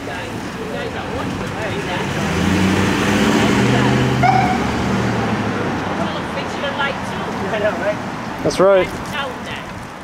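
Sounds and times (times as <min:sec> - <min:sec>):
van engine driving past: 0:01.0 - 0:08.1.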